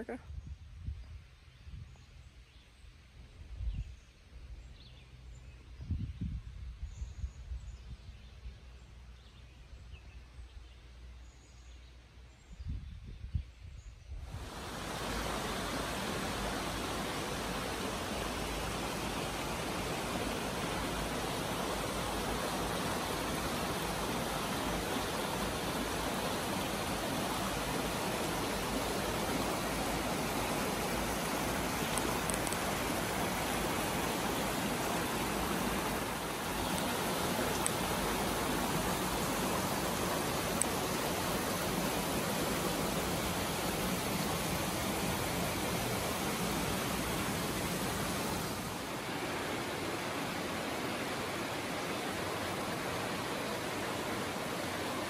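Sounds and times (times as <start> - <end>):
brook rushing over rocks: 14.3 - 55.0.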